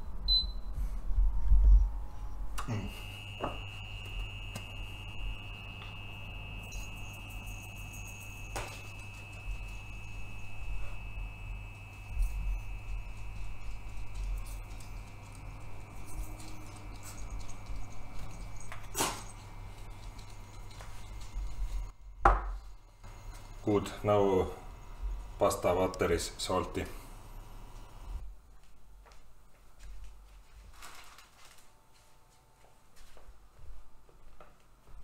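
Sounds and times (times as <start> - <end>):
electric cooktop whine and hum: 0.0 - 35.0.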